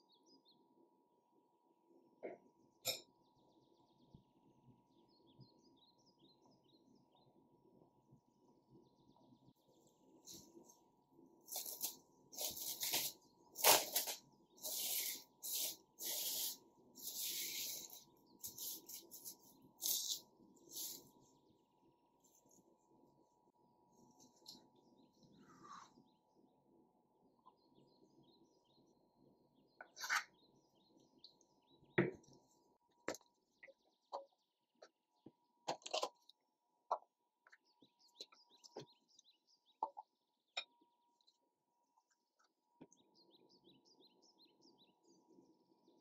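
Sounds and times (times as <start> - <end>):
faint birds chirping: 0.0 - 46.0.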